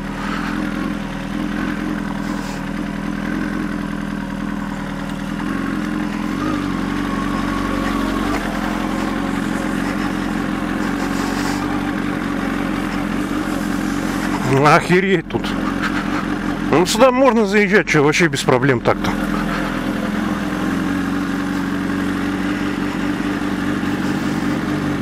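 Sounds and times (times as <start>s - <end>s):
motorcycle engine at low revs: 0.0s - 25.0s.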